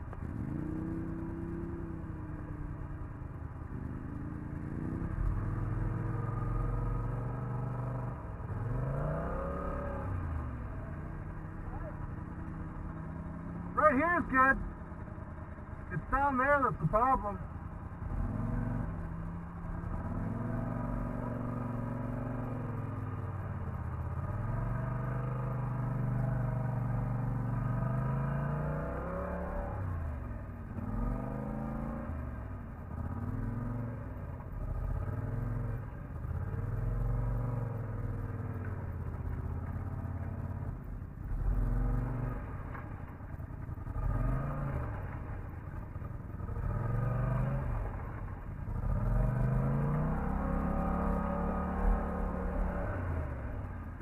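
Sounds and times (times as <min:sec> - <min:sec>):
atv engine revving: 0:00.0 - 0:54.0.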